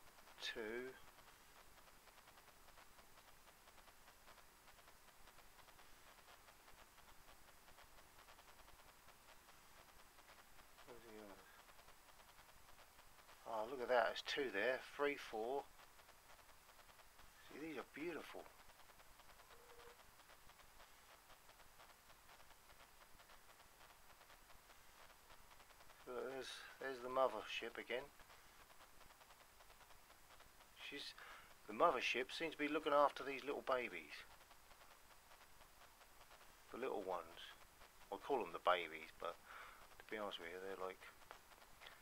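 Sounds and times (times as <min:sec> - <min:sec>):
faint crackling: 0:00.0 - 0:42.0
faint hum: 0:00.0 - 0:42.0
faint steady hiss: 0:00.0 - 0:42.0.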